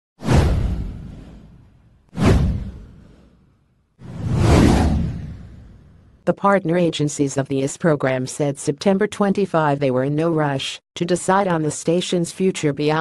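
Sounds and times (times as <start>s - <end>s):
whoosh sound effects: 4.0s - 6.0s.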